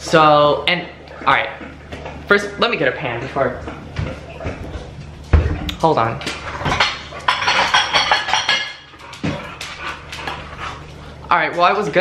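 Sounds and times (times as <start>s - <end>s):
ceramic dishes clattering: 6.6s - 8.9s.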